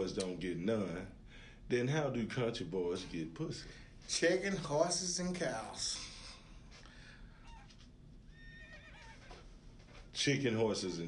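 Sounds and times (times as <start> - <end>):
horse whinnying: 8.3 - 9.5.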